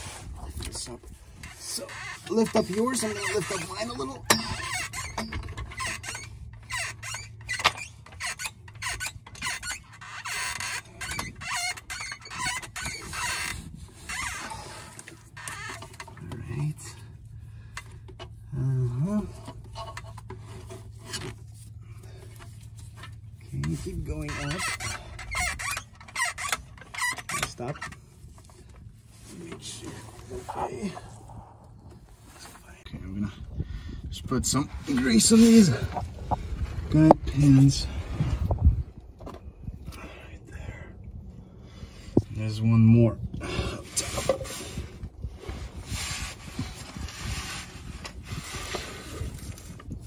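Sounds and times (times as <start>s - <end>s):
short squeaks: 1.3s - 16.2s, 19.3s - 28.4s
steady low hum: 10.8s - 50.0s.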